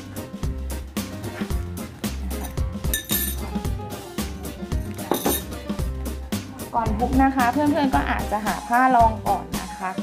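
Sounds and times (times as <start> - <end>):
background music with steady beat: 0.0 - 10.0
fork clinking against glass bowl: 2.4 - 3.6, 5.0 - 5.6.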